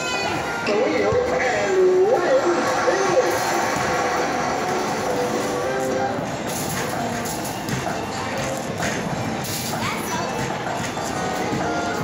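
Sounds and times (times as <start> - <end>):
hubbub of voices: 0.0 - 12.0
game machine music: 10.5 - 12.0.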